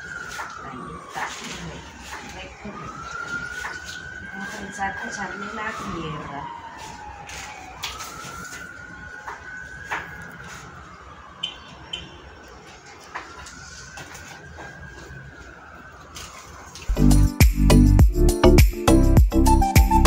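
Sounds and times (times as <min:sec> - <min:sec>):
emergency vehicle siren wailing: 0:00.0 - 0:20.0.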